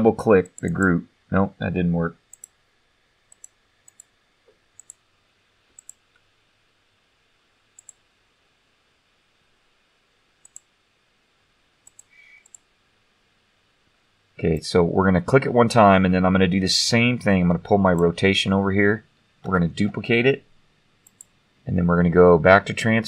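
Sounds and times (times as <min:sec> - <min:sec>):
computer mouse clicks: 0:02.3 - 0:02.6, 0:03.3 - 0:04.1, 0:04.8 - 0:05.0, 0:05.7 - 0:06.2, 0:07.8 - 0:08.0, 0:10.4 - 0:10.7, 0:11.8 - 0:12.7, 0:21.0 - 0:21.4.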